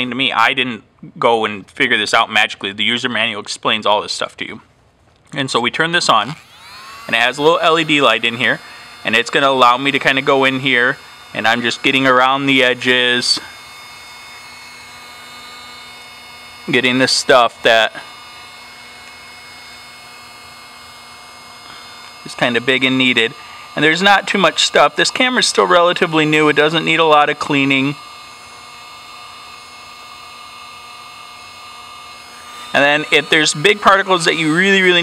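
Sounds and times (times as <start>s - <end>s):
handheld vacuum whirring: 6.1s - 35.0s.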